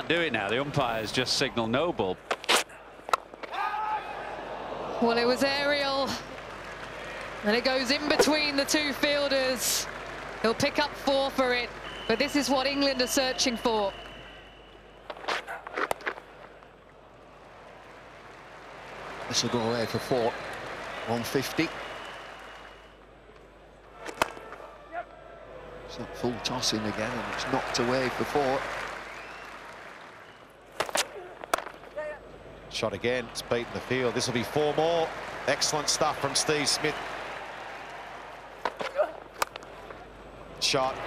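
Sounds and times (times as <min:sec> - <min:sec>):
crowd noise: 0:00.0 - 0:41.0
cricket bat hitting ball: 0:24.0 - 0:24.6.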